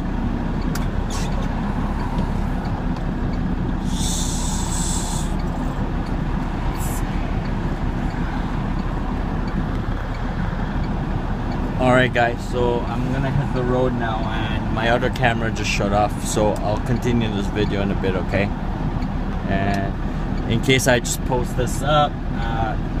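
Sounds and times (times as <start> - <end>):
truck engine running: 0.0 - 23.0
air brake hiss: 3.8 - 5.4.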